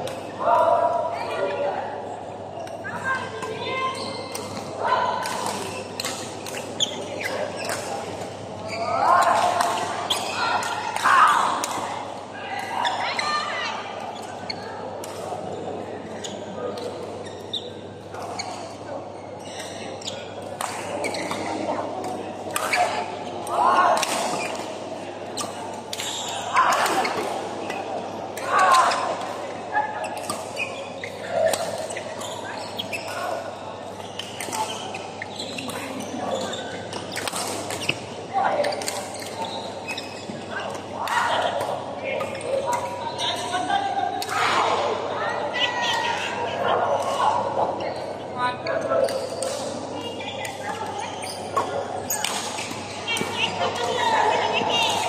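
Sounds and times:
players' voices and calls: 0.0 - 55.0.

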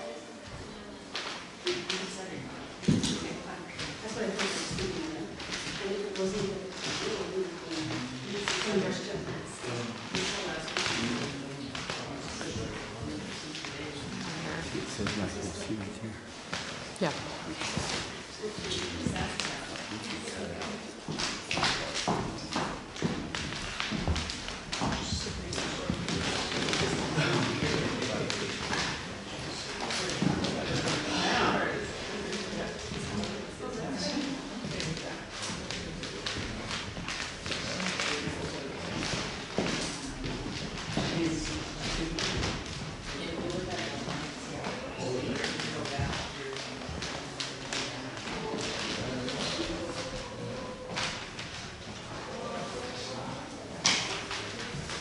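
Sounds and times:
murmur of voices: 0.0 - 55.0
people chattering: 0.0 - 55.0.

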